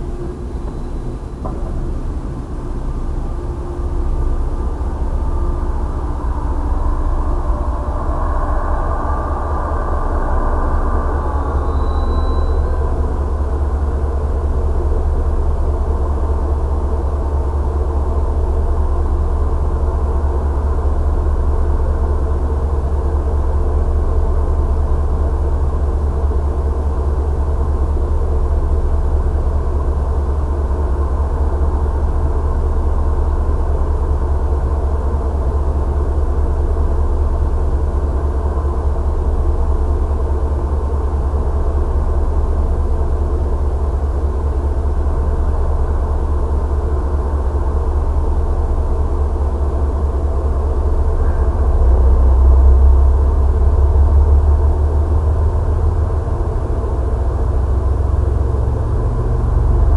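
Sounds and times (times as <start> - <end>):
faint tone: 0.0 - 17.2, 50.8 - 54.4
train rumbling to a stop: 0.0 - 59.9.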